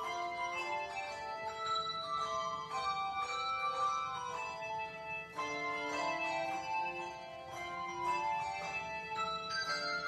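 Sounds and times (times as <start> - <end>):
handbell choir ringing chords: 0.0 - 10.0.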